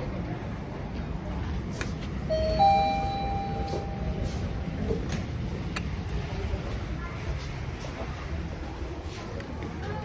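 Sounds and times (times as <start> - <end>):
elevator two-tone chime: 2.3 - 4.4.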